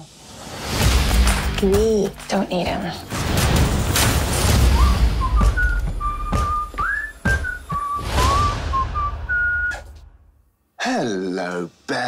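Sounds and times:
trailer music: 0:00.1 - 0:10.3
person whistling a tune: 0:04.6 - 0:10.0.

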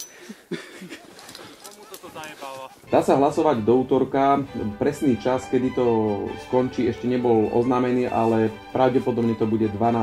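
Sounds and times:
person's voice: 0:01.6 - 0:10.0.

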